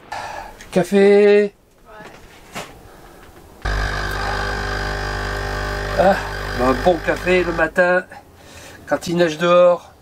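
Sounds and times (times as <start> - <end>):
coffee machine pump humming: 3.6 - 7.7.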